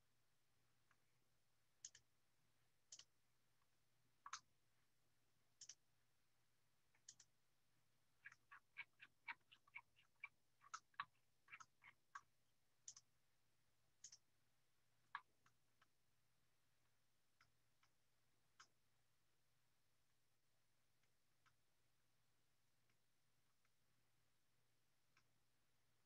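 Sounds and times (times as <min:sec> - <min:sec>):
faint steady hum: 0:00.0 - 0:26.0
faint sharp clicks: 0:04.2 - 0:04.5, 0:05.6 - 0:05.8, 0:07.0 - 0:07.3, 0:12.9 - 0:13.1, 0:14.0 - 0:14.2.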